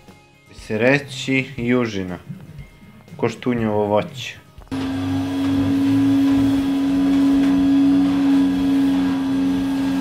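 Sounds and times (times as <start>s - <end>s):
vacuum cleaner running: 4.7s - 10.0s.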